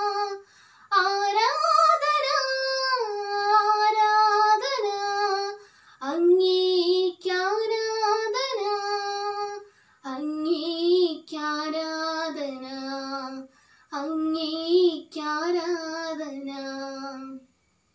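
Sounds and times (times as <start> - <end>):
short breaths: 0.4 - 0.9, 5.6 - 6.0, 9.7 - 10.0, 13.5 - 13.9.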